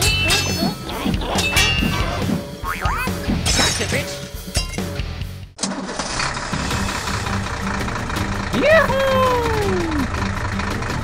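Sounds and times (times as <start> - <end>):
background music: 0.0 - 5.6, 6.5 - 11.0.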